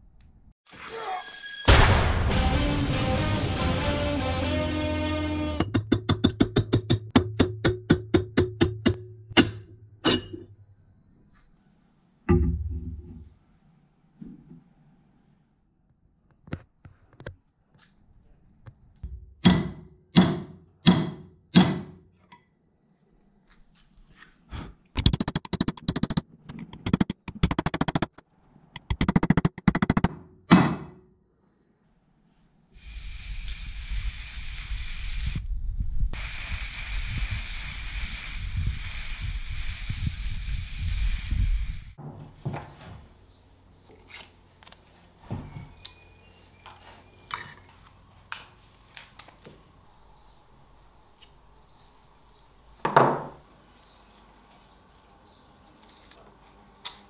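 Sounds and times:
paint spraying hiss: 32.8 - 35.4, 36.2 - 42.0.

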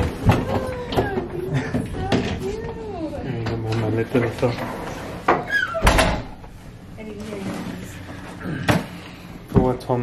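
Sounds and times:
door shutting with a thud: 5.8 - 6.4.

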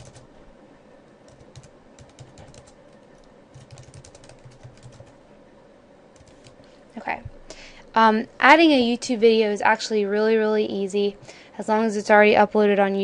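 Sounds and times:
typing on computer keyboard: 0.0 - 0.3, 1.3 - 5.2, 6.2 - 6.6.

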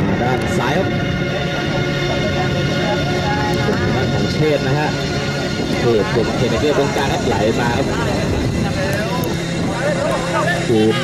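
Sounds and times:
man commentating: 10.2 - 11.0.

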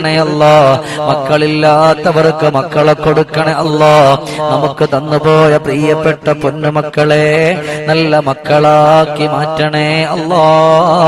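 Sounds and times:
man chanting into a microphone: 0.0 - 11.0
breaths between phrases: 0.8 - 1.2, 4.2 - 4.6, 7.6 - 7.9.

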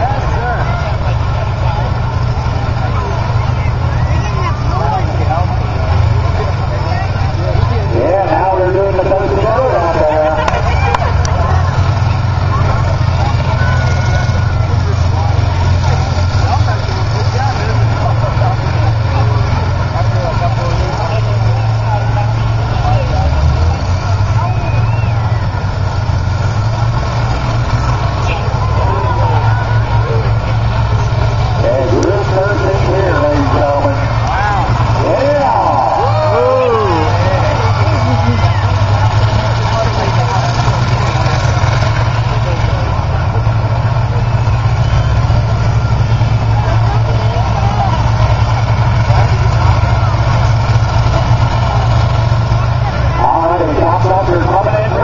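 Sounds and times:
combine harvester engines running: 0.0 - 55.0.

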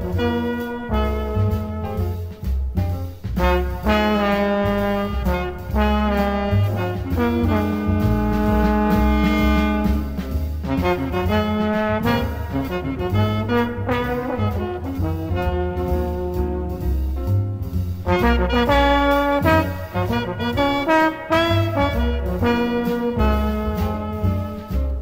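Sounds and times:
small jazz group playing: 0.0 - 25.0.

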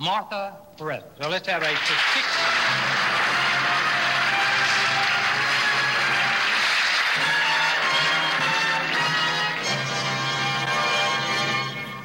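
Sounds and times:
live band music: 3.8 - 12.0.

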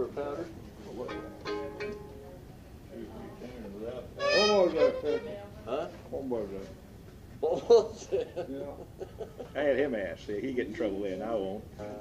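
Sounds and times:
fiddle notes: 1.1 - 2.2, 4.2 - 5.5.

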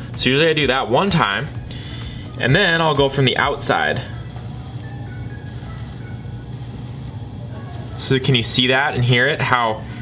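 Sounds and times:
quiet background music: 0.0 - 10.0
potter's wheel humming: 1.6 - 10.0.

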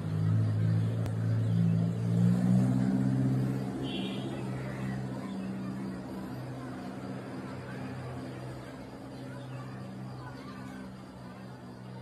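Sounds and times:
motor engine droning: 0.0 - 12.0.

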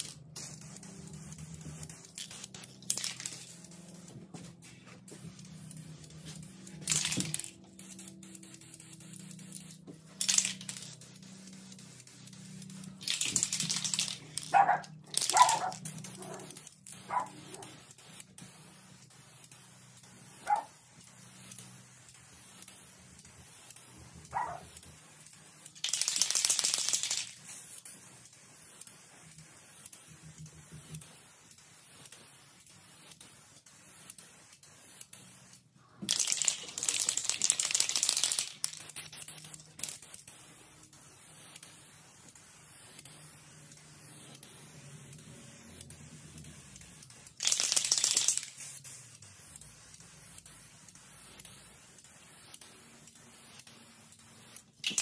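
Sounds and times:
spray paint can hissing: 0.0 - 55.0.

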